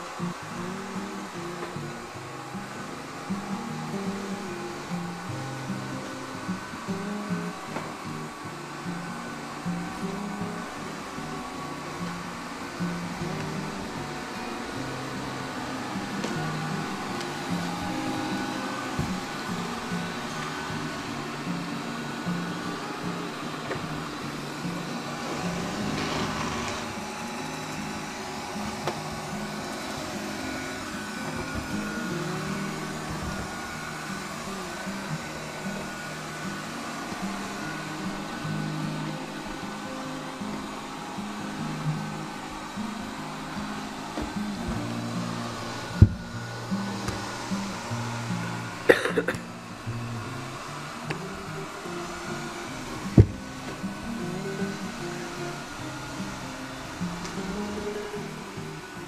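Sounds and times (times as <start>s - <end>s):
robot vacuum motor whine: 0.0s - 59.0s.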